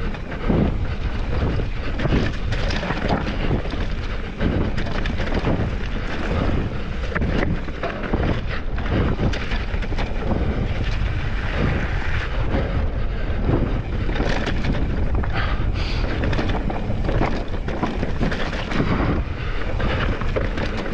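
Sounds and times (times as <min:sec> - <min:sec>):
bike rattling and knocking: 0:00.0 - 0:20.9
bike tyres over dirt and stone: 0:00.0 - 0:20.9
wind on microphone: 0:00.0 - 0:20.9.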